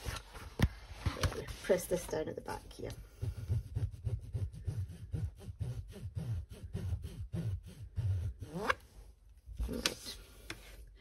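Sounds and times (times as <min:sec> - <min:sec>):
bone folder rubbing on canvas: 0:02.7 - 0:09.0, 0:09.6 - 0:10.8.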